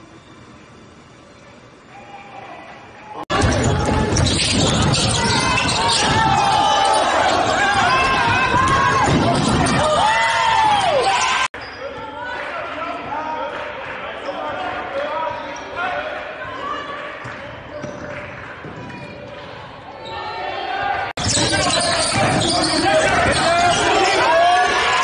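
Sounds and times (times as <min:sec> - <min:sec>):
voices echoing in hall: 0:01.9 - 0:25.0.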